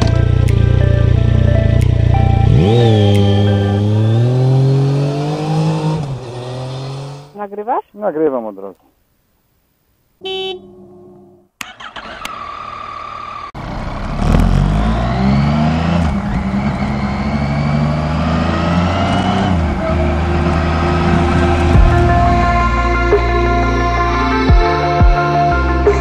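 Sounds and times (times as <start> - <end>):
motorcycle engine accelerating: 0.0 - 7.4, 10.6 - 23.9.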